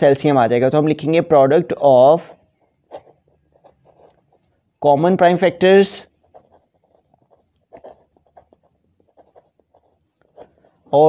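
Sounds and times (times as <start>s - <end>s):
pen scratching on paper: 2.4s - 4.8s, 5.5s - 11.0s.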